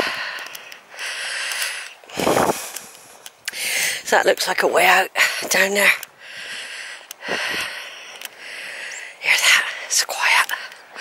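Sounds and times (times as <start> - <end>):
person breathing: 0.0 - 4.1, 5.2 - 11.0
faint clicks: 0.2 - 2.0, 2.6 - 4.6, 5.8 - 10.9.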